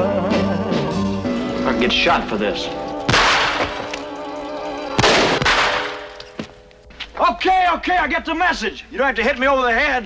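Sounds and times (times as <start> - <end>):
film soundtrack music: 0.0 - 6.9
sudden loud bangs: 3.1 - 4.0, 5.0 - 6.5.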